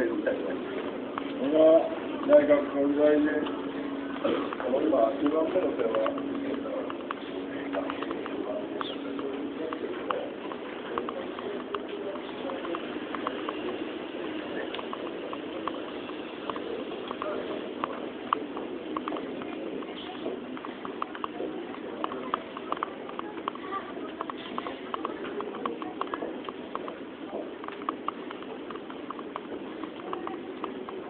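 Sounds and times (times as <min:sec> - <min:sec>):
crowd murmur: 0:00.0 - 0:31.0
faint distant voices: 0:00.0 - 0:31.0
low steady hum: 0:00.0 - 0:31.0
hard-soled footsteps clicking: 0:00.1 - 0:31.0.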